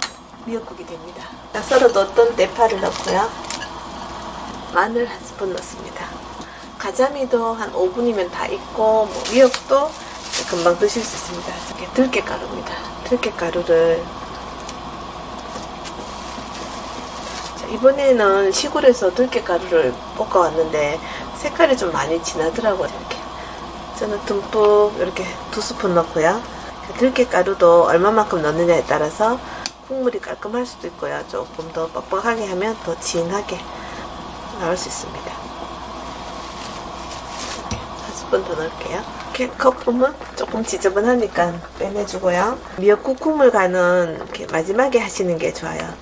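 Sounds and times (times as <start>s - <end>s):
soup boiling and bubbling: 0.0s - 21.6s, 22.2s - 45.2s.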